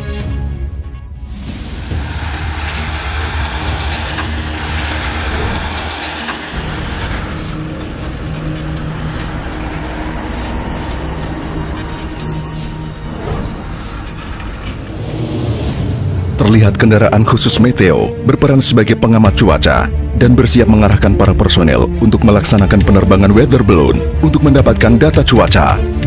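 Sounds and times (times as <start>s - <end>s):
heavy trucks driving: 1.3s - 18.2s.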